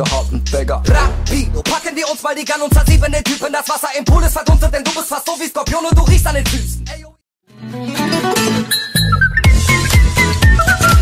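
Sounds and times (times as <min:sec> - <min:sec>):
rapping over heavy bass and drums: 0:00.0 - 0:07.2.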